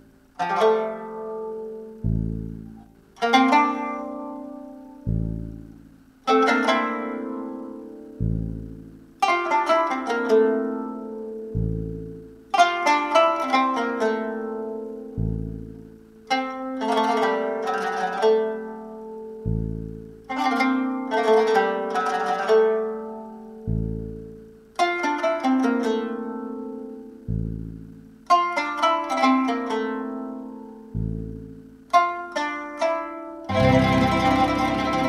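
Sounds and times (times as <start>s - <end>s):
plucked zither music: 0.0s - 35.0s
deep low zither note: 0.4s - 12.6s, 13.5s - 16.0s, 16.8s - 24.5s, 30.6s - 31.6s, 33.5s - 35.0s
dense music ensemble: 33.5s - 35.0s.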